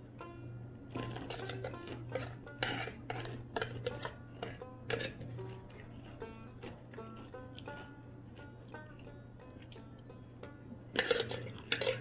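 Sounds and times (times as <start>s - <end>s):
banjo plucked notes: 0.0s - 12.0s
low hum: 0.0s - 12.0s.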